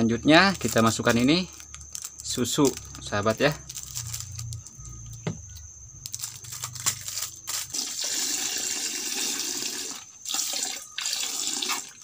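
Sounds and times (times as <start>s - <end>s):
milk pouring into liquid: 8.0s - 12.0s.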